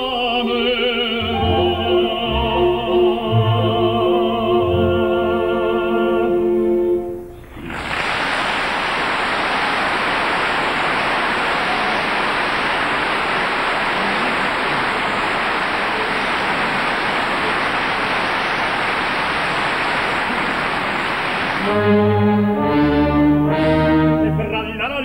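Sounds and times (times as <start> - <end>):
singing with orchestra: 0.0 - 7.9, 21.6 - 25.0
audience applauding: 7.4 - 24.6.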